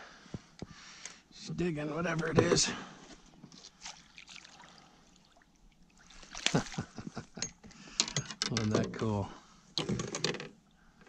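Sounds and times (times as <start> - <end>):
water splashing and trickling: 3.4 - 7.6.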